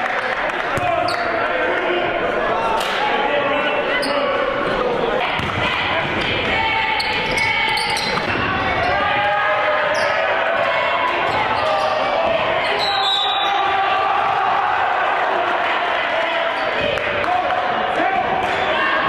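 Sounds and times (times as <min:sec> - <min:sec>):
indistinct voices: 0:00.0 - 0:19.0.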